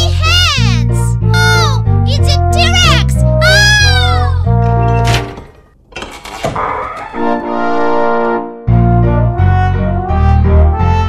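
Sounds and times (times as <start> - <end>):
bouncy cartoon music: 0.0 - 5.4, 6.6 - 11.0.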